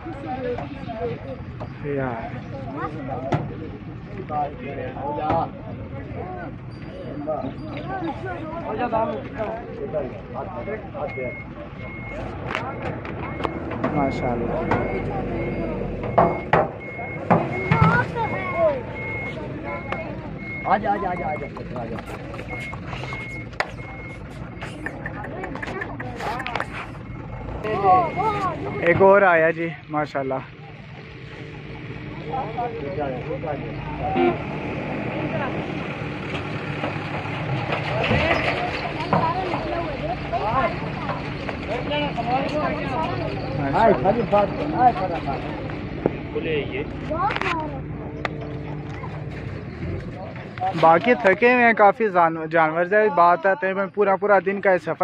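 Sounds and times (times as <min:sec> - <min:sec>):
men's voices: 0:00.0 - 0:35.6, 0:39.1 - 0:55.0
reversing alarm beeping: 0:10.4 - 0:24.8, 0:26.8 - 0:29.1
low engine hum: 0:11.0 - 0:51.5
men calling out: 0:27.5 - 0:29.0.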